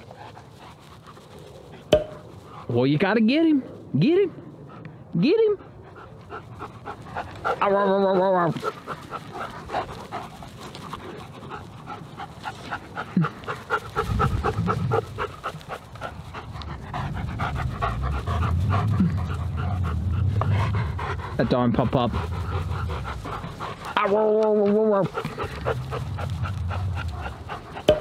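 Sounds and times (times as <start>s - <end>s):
dog panting: 0.0s - 3.8s, 4.4s - 28.0s
low rumble: 8.3s - 24.0s, 25.1s - 28.0s.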